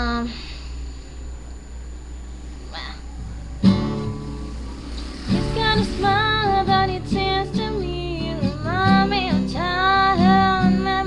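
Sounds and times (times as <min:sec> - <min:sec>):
acoustic guitar chord strummed: 0:02.9 - 0:11.0.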